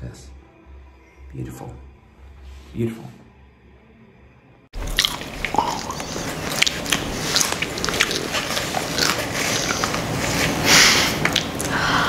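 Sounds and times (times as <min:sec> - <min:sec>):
crunching and chewing snack: 0:04.8 - 0:11.7.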